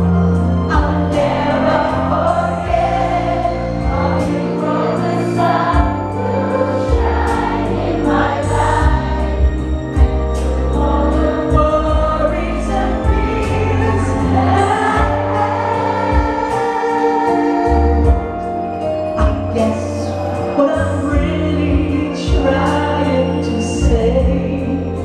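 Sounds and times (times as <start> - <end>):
audience singing along: 0.0 - 25.0
live band music: 0.0 - 25.0.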